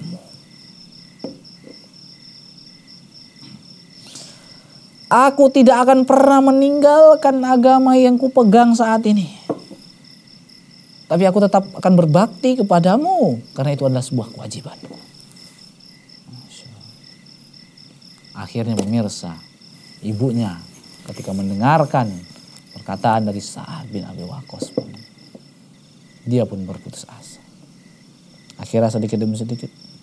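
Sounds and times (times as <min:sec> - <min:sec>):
insect chirping: 0:00.0 - 0:30.0.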